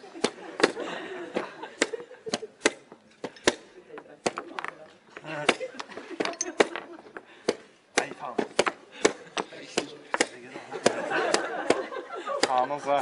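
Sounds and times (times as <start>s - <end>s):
spectators' voices and chuckles: 0.0s - 2.7s, 3.6s - 7.4s, 8.8s - 13.0s.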